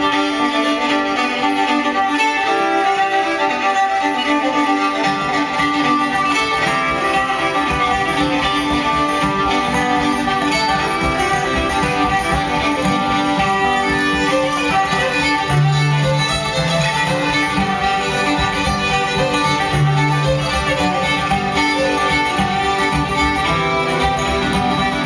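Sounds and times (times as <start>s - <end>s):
acoustic guitar accompaniment: 0.0s - 25.0s
fiddles playing folk tune: 0.0s - 25.0s.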